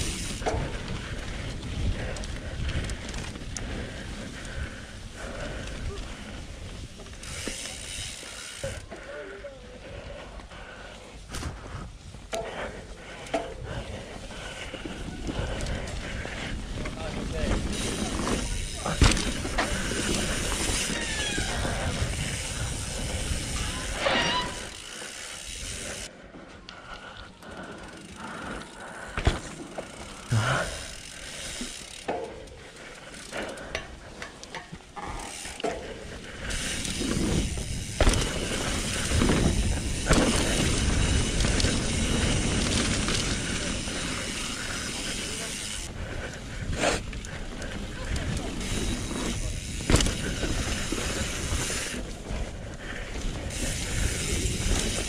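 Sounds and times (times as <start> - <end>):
bike tyre noise on dirt: 0.0 - 55.0
bike knocks and clicks: 17.7 - 21.4, 33.7 - 42.5, 48.9 - 50.8.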